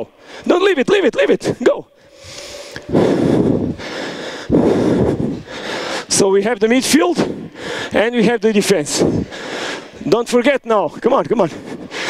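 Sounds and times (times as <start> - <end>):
breath rushing into microphone: 2.0 - 6.2, 7.2 - 8.0, 8.9 - 10.0.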